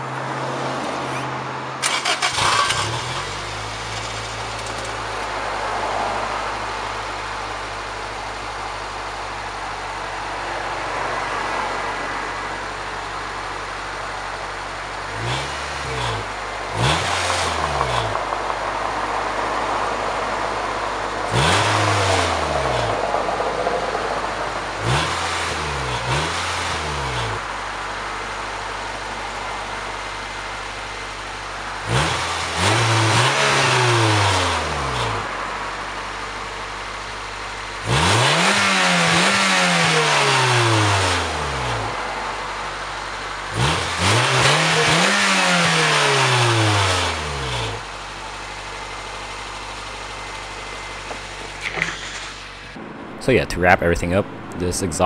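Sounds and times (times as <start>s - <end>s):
car engine idling and revving: 0.0s - 55.0s.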